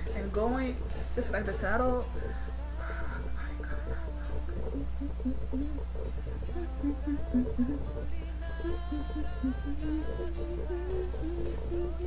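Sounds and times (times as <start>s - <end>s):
steady low hum: 0.0s - 12.0s
woman humming a pop tune: 2.0s - 12.0s.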